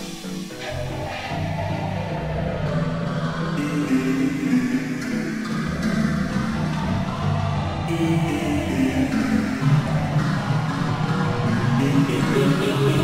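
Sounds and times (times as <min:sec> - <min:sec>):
synth chords: 0:00.0 - 0:13.0.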